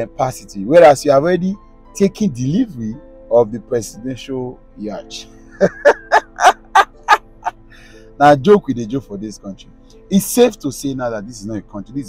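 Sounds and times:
man laughing: 0:05.5 - 0:07.6.

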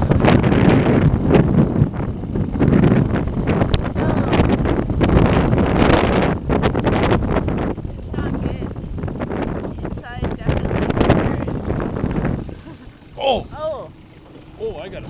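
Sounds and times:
outboard motor running: 0:00.0 - 0:15.0
wind buffeting microphone: 0:00.0 - 0:15.0.

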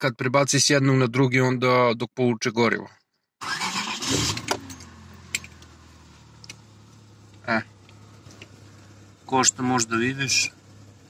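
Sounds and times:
car engine starting and idling: 0:03.4 - 0:11.0.

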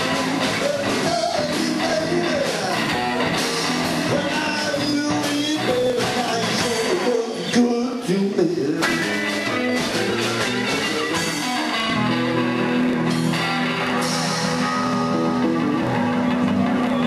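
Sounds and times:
bending electric guitar notes: 0:00.0 - 0:17.0
live blues band playing: 0:00.0 - 0:17.0.

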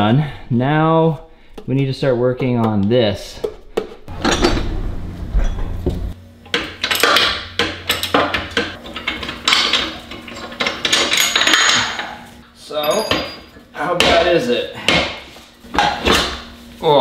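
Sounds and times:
low hum: 0:03.6 - 0:06.5
metal parts clanking and rattling: 0:04.0 - 0:13.6.

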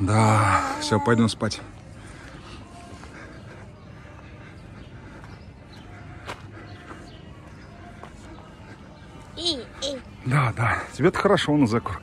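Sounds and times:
footsteps on paved path: 0:00.2 - 0:12.0.

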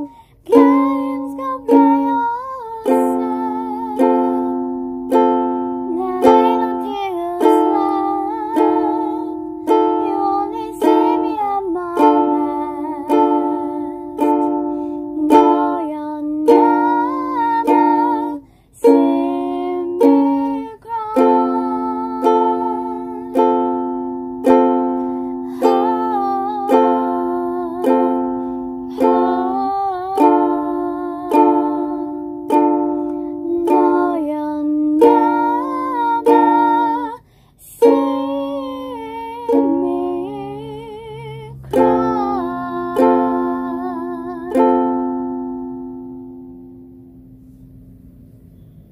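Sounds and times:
ukulele strumming chords: 0:00.0 - 0:48.5.

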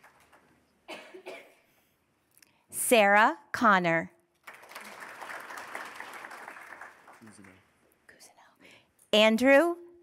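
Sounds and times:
audience applause: 0:00.0 - 0:00.5, 0:04.4 - 0:07.7.

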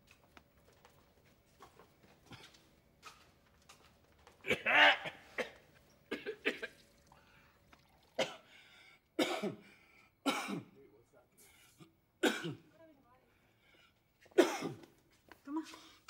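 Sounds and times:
man coughing: 0:04.4 - 0:06.8, 0:08.2 - 0:08.5, 0:09.2 - 0:10.8, 0:11.4 - 0:12.7, 0:14.3 - 0:14.9.

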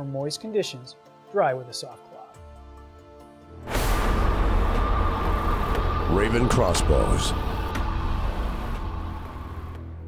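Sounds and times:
high hiss: 0:03.7 - 0:09.6
low rumble: 0:03.7 - 0:10.0
sustained tones: 0:03.7 - 0:10.0.

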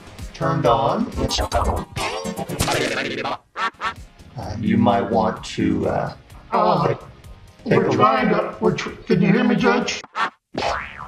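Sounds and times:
processed voice squawks: 0:01.1 - 0:04.7, 0:10.0 - 0:10.4.

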